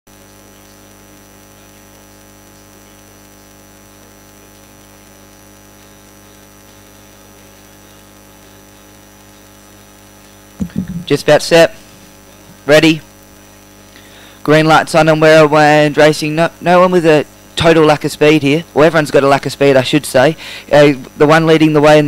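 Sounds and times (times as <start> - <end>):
electrical mains hum: 0.1 - 22.0.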